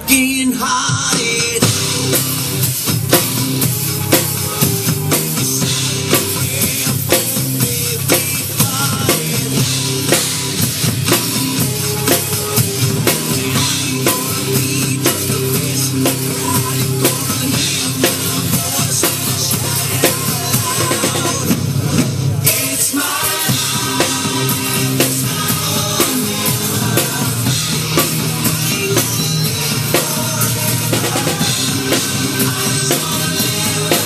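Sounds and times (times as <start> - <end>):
rock backing music: 0.0 - 34.0
rock drum beat: 0.0 - 34.0.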